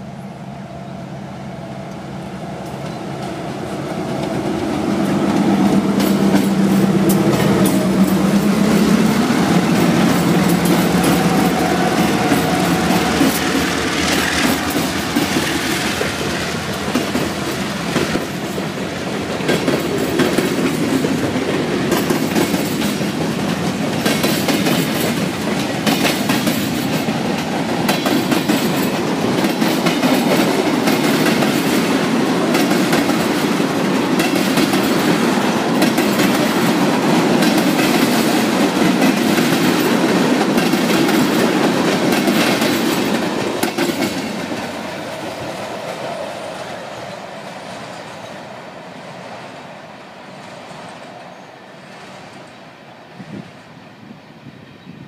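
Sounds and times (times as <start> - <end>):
freight train wheels clacking: 1.8 - 52.6.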